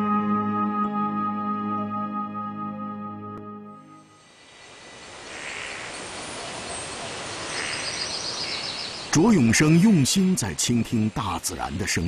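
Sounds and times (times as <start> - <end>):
forest background hiss: 4.0 - 12.0
birds calling: 5.2 - 10.2.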